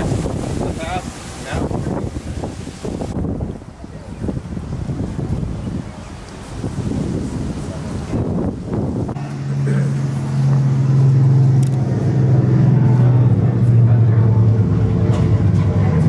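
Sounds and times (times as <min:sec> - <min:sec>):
wind noise on microphone: 0:00.0 - 0:09.2
steady low drone: 0:08.0 - 0:16.0.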